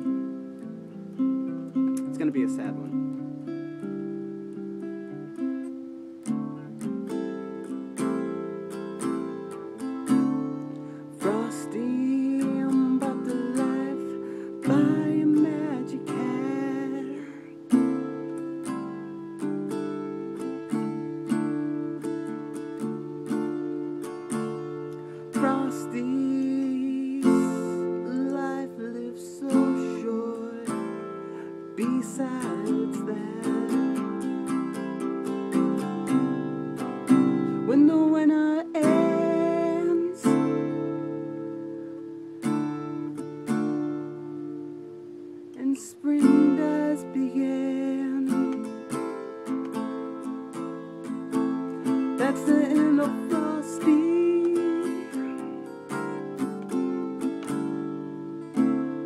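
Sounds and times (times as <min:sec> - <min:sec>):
acoustic guitar strummed: 0:00.0 - 0:59.0.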